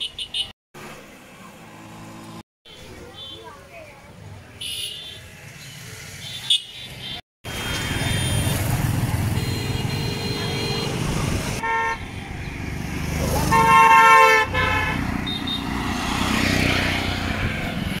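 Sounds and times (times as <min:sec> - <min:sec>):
passing road traffic: 0:00.0 - 0:18.0
vehicle horns honking: 0:04.6 - 0:05.3, 0:06.2 - 0:12.0, 0:13.4 - 0:15.7.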